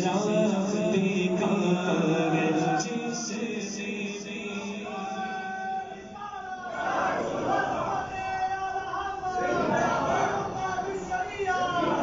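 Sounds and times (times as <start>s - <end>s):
person chanting devotional song: 0.0s - 12.0s.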